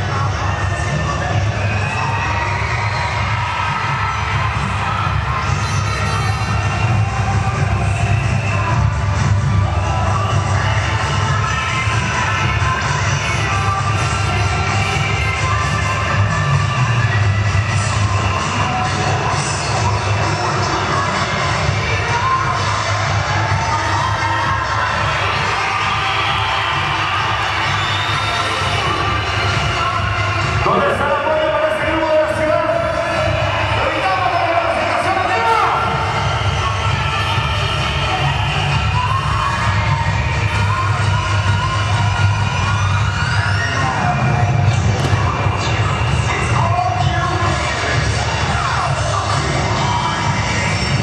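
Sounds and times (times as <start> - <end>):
cheer music with heavy bass: 0.0 - 51.0
crowd cheering and shouting: 0.0 - 51.0.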